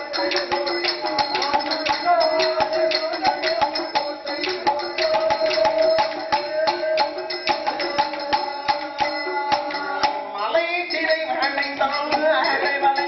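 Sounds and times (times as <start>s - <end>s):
bells jingling: 0.0s - 13.0s
bow instrument struck in beat: 0.0s - 13.0s
held melodic tone: 0.0s - 13.0s
person singing: 0.0s - 13.0s.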